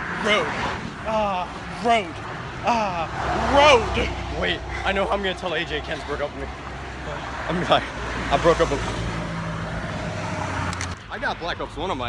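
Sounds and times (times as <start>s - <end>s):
road noise: 0.0s - 12.0s
vehicle engine hum: 0.0s - 12.0s.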